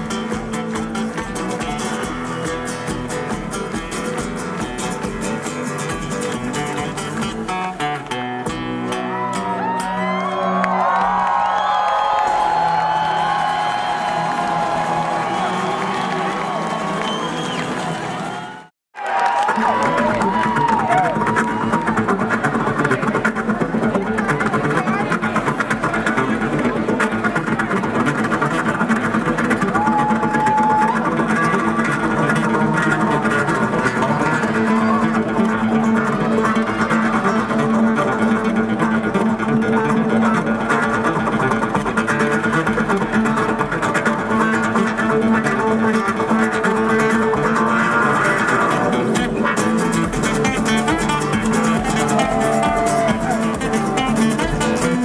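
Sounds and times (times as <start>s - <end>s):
acoustic guitars playing: 0.0s - 11.3s, 12.1s - 18.6s, 19.8s - 55.0s.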